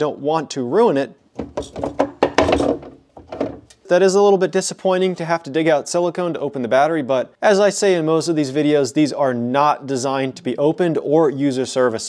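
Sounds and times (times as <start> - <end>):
plastic lid knock: 1.4 - 3.7
plastic scraping rub: 1.4 - 3.7.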